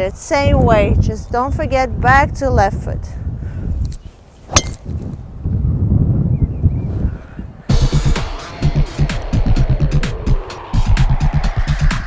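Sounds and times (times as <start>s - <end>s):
golf club striking ball: 4.5s - 5.1s.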